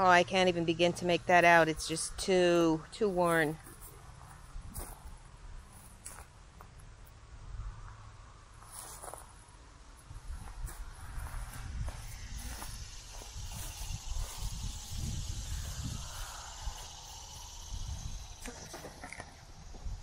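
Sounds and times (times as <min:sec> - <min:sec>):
wind rumbling on microphone: 0:03.6 - 0:06.0, 0:09.9 - 0:20.0
insects droning: 0:08.3 - 0:20.0.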